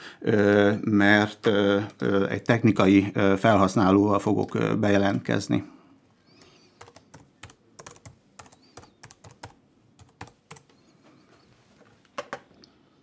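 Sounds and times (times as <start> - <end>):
typing on laptop keyboard: 6.8 - 10.8.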